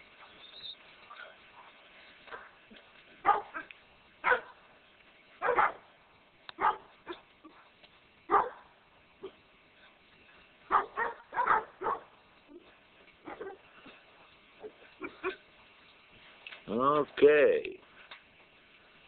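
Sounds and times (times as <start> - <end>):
dog barking: 3.2 - 4.6, 5.4 - 5.9, 6.6 - 7.6, 8.3 - 9.4, 10.7 - 12.1, 13.2 - 13.6.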